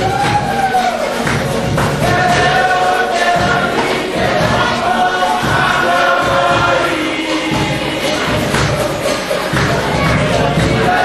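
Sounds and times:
group singing in chorus: 0.0s - 11.0s
low beat thuds: 0.0s - 11.0s.

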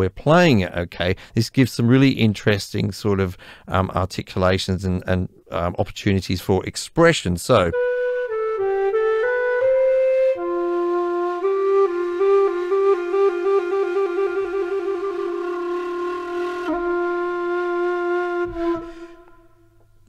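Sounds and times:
bamboo flute notes: 7.7s - 20.0s.

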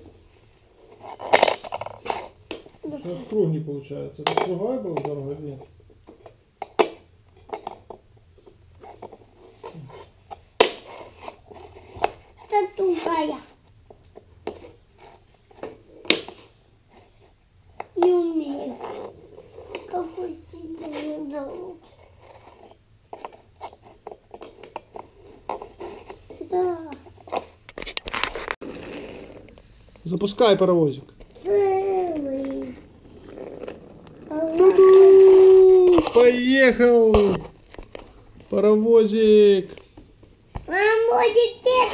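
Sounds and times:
child babbling: 31.4s - 32.8s, 34.3s - 36.0s.

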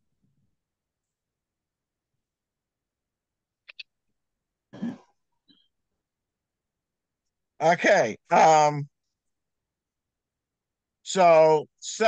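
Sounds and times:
person clearing throat: 4.8s - 5.2s.

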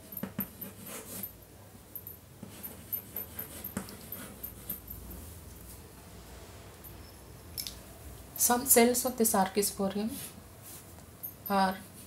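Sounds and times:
chalk scratching on blackboard: 0.2s - 1.3s, 2.4s - 4.9s.

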